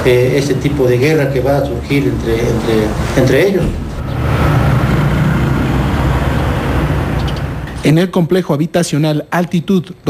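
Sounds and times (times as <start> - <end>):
motor vehicle rumble: 0.0 - 7.9
road noise: 0.0 - 8.8.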